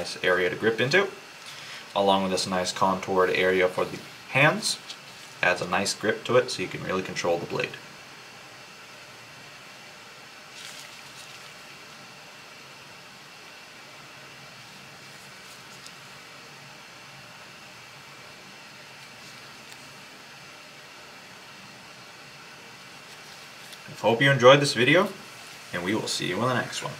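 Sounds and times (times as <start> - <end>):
room tone hiss: 0.0 - 26.9.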